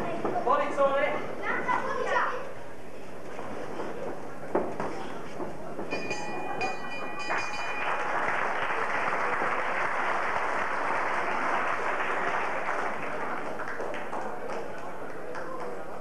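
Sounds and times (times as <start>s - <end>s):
crowd noise: 0.0s - 16.0s
boxing ring bell: 5.9s - 8.1s
applause: 7.2s - 16.0s.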